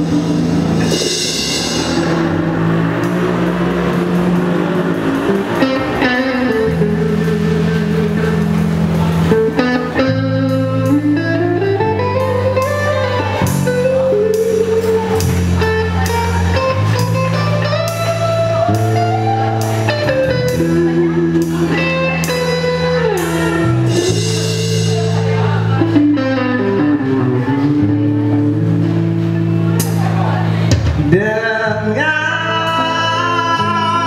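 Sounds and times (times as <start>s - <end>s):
drums with cymbal strikes: 0.0s - 26.5s
sliding lead melody: 0.0s - 31.3s
electric bass: 0.0s - 34.0s
electric guitars: 0.0s - 34.0s.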